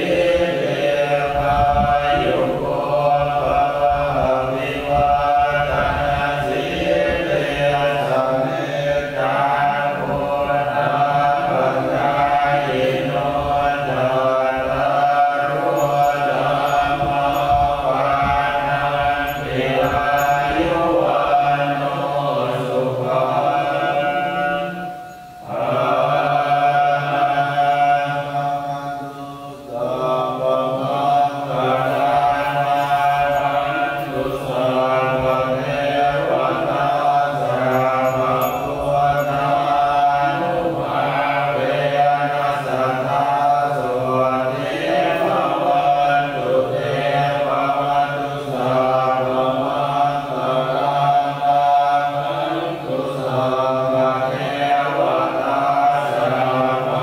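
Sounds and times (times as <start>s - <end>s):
group chanting in unison: 0.0s - 57.0s.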